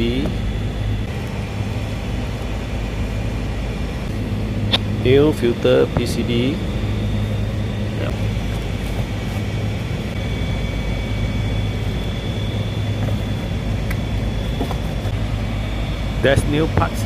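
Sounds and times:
air conditioner units humming: 0.0s - 17.0s.

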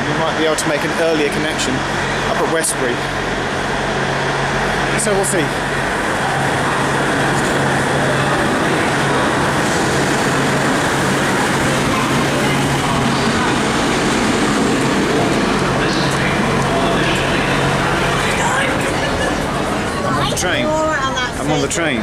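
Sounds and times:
diesel train engines humming: 0.0s - 22.0s.

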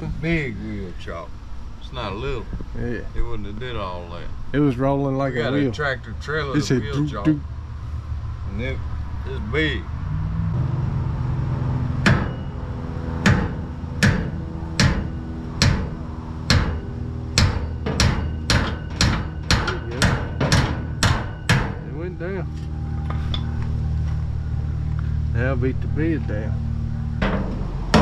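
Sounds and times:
steady low hum: 0.0s - 28.0s
hammer blows on metal: 12.0s - 22.0s.

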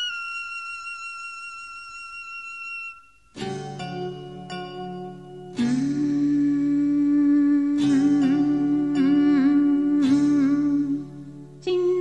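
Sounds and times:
low musical accompaniment: 0.0s - 12.0s
woman humming a melody: 5.6s - 12.0s.

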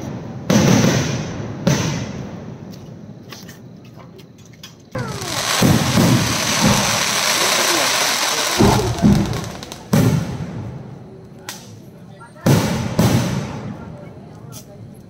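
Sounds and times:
firework bangs: 0.0s - 2.7s, 5.0s - 14.1s
firework crackling: 4.9s - 14.0s
firework shell bursting: 5.0s - 10.9s.

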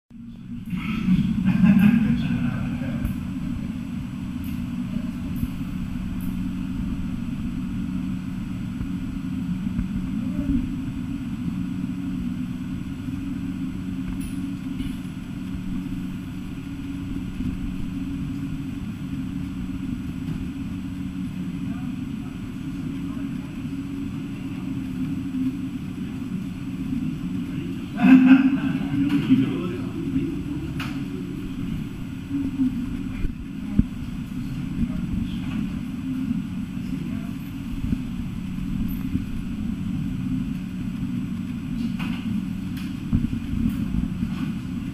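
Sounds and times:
vehicle engine idling: 0.1s - 44.9s.

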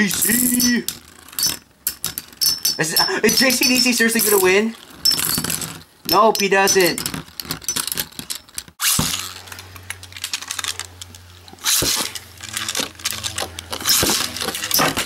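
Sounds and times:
low hum of spinning tops: 0.0s - 15.0s
spinning tops clattering: 0.0s - 15.0s.

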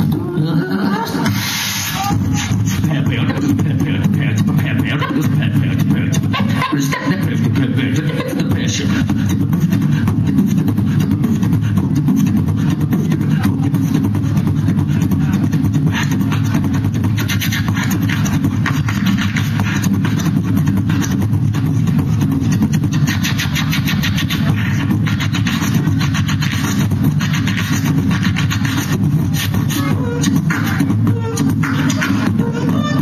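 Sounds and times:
person beatboxing: 0.0s - 33.0s.

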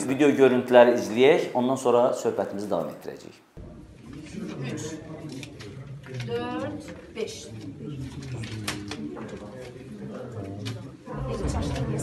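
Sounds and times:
low voices murmuring: 3.6s - 12.0s
paper rustling: 5.2s - 10.9s.

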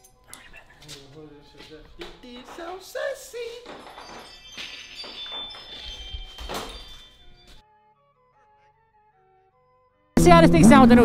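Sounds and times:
faint bell-like chiming tones: 3.7s - 7.6s.

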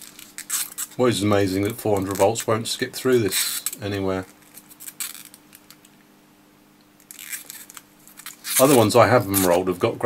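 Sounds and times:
plastic film crinkling: 0.0s - 5.9s, 7.0s - 9.9s
faint steady hum: 0.0s - 10.0s.

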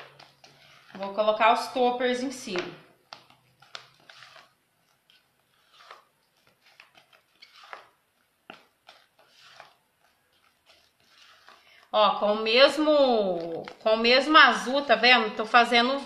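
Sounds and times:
spatula scraping cream in bowl: 0.0s - 14.8s.

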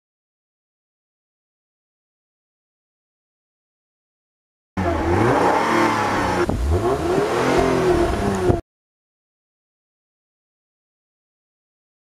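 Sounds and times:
car engine revving: 4.8s - 8.6s.

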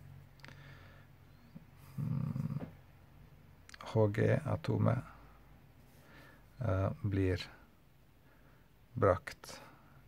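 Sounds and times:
man humming: 1.8s - 2.8s.

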